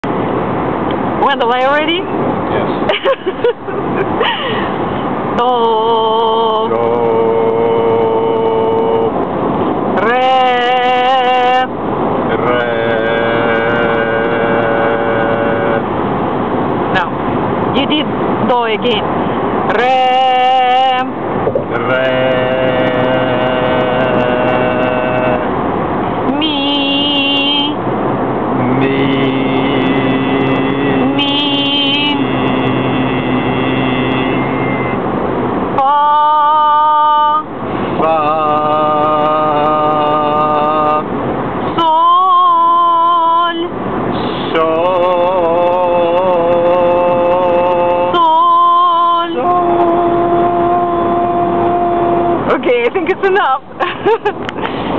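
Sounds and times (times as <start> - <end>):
car hum: 0.0 - 54.9
road noise: 0.0 - 54.9
man singing long held notes: 4.7 - 16.1, 19.6 - 27.8, 28.4 - 35.0, 35.7 - 52.7.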